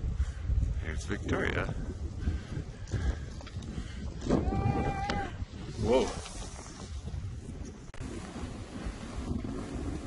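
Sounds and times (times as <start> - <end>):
wind rumble on microphone: 0.0 - 10.0
person shouting whoa: 4.4 - 5.4.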